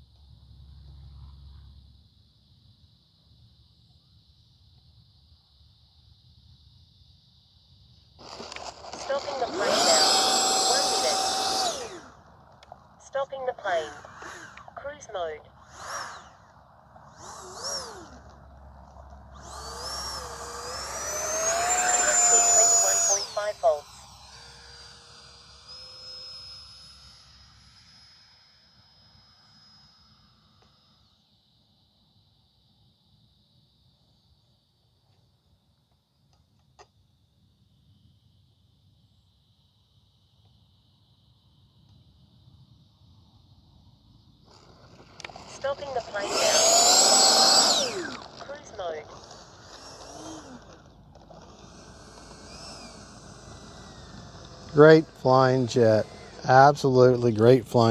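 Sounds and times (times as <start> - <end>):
electric ducted fan whine: 0.0 - 36.2, 36.8 - 57.9.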